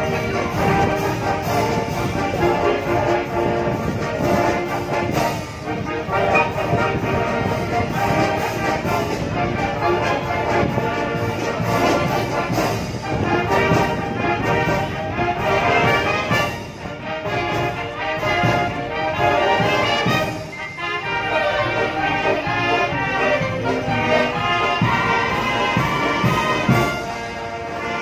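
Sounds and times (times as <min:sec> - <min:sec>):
brass marching band playing: 0:00.0 - 0:28.0.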